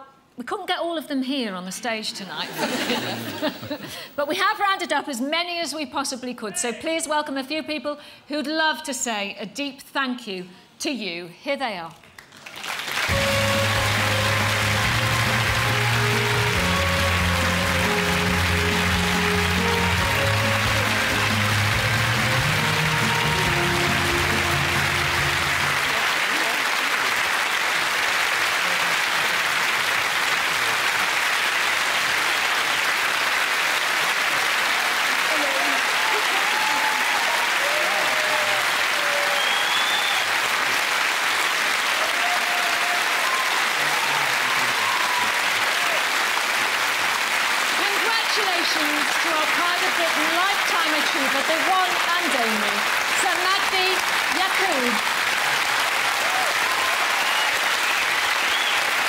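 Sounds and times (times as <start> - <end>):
audience applause: 2.5 - 4.3, 12.2 - 59.0
music playing: 13.1 - 26.7.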